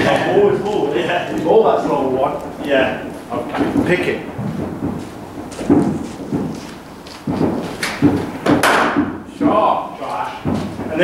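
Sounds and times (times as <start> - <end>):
lesser thuds: 0.0 - 11.0
cricket bat striking ball: 7.2 - 9.2.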